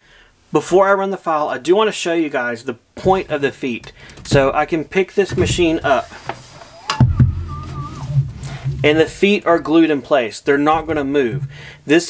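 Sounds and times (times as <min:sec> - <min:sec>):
metal frame knocking on wood: 0:03.0 - 0:09.4
faint wavering tone: 0:06.7 - 0:08.3.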